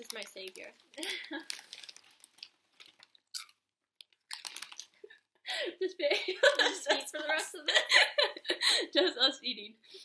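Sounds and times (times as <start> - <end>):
chips crunching in mouth: 0.0 - 5.0.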